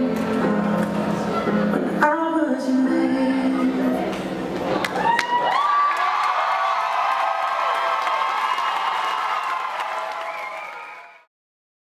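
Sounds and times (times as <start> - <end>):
music: 0.0 - 5.5
audience cheering and applauding: 4.8 - 11.3.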